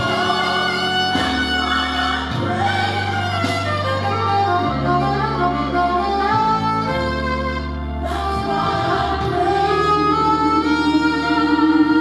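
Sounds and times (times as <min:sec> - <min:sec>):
long-held bass notes: 0:00.0 - 0:12.0
solo saxophone melody: 0:00.0 - 0:12.0.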